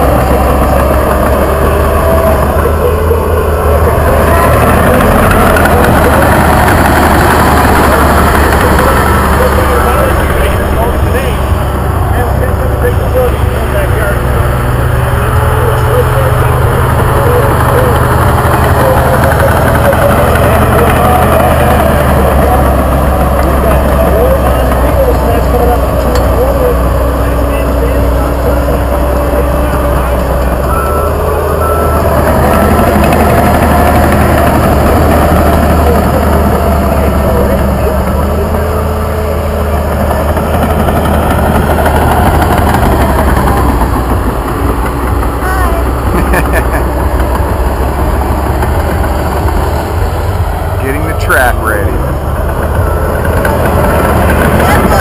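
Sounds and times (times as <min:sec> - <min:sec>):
dozer diesel engine under load: 0:00.0 - 0:55.0.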